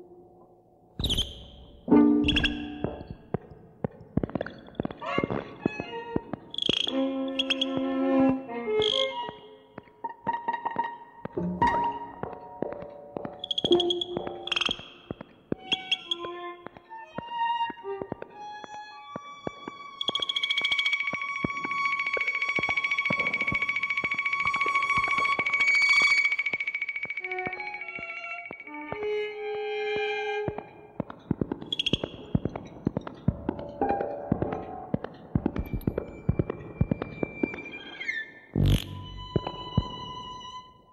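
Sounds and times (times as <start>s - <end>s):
electronic violin music: 15.6s - 30.6s, 38.6s - 40.9s.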